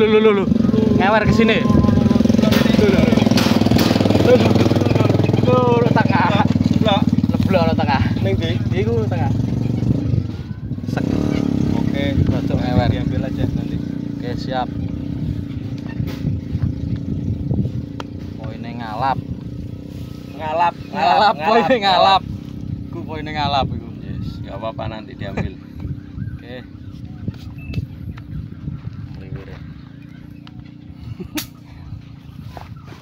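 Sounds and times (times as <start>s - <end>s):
low engine hum: 0.0s - 33.0s.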